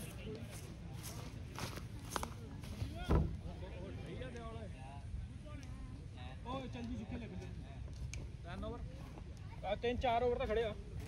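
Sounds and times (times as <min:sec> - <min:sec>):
people talking in the distance: 0:00.0 - 0:11.0.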